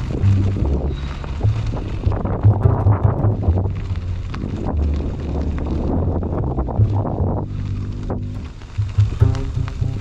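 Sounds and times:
steady tones: 0:00.0 - 0:10.0
tyres crackling over gravel: 0:00.0 - 0:10.0
wind buffeting microphone: 0:00.0 - 0:10.0.

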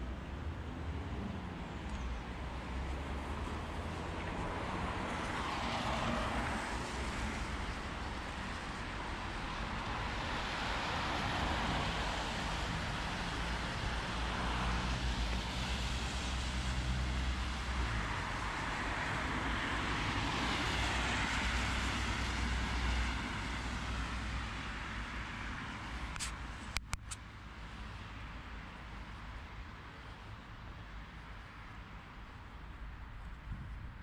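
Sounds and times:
cars passing: 0:00.0 - 0:32.6
deep traffic rumble: 0:00.0 - 0:34.0.

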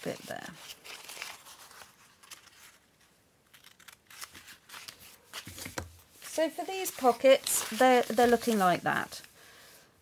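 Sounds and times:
paper crinkling: 0:00.0 - 0:09.3
scissors snipping paper: 0:03.5 - 0:05.0.

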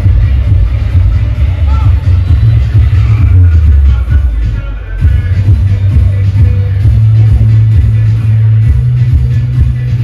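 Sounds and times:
electronic dance music: 0:00.0 - 0:10.0
heavy bass note: 0:00.0 - 0:10.0.

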